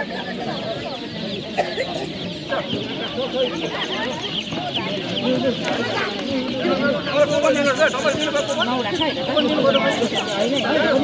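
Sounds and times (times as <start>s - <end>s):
chicks peeping: 0.0s - 11.0s
people talking: 0.0s - 11.0s.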